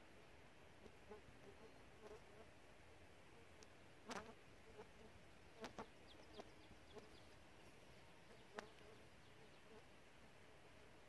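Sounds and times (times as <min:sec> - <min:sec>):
faint clicks: 0:03.6 - 0:04.2, 0:08.5 - 0:09.0.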